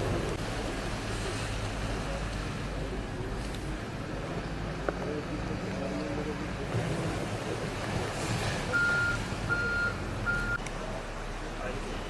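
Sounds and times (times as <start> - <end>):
voices: 0.0 - 12.0
high electronic beeps: 8.8 - 10.6.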